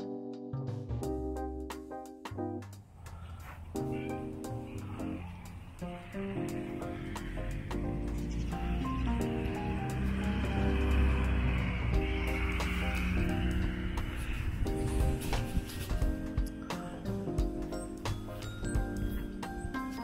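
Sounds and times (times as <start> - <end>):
instrumental music with beat: 0.0 - 20.0.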